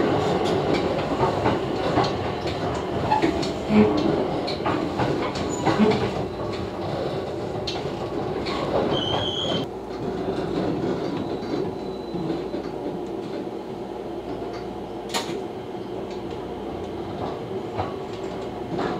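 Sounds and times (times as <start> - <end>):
electric train rumble: 0.0 - 18.9
rail clicks: 0.0 - 18.9
high squeal: 8.9 - 9.6.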